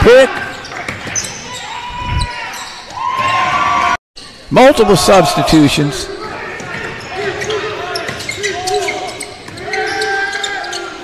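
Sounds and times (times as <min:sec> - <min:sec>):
voices of players and crowd: 0:00.0 - 0:11.0.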